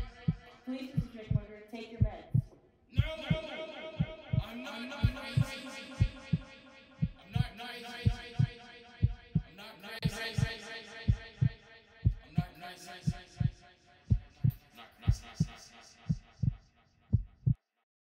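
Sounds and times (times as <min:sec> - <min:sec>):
heartbeat thumps: 0:00.0 - 0:17.6.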